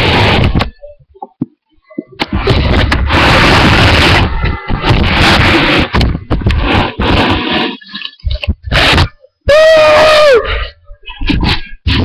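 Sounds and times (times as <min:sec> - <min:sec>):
distorted noise on microphone: 0:00.0 - 0:12.0.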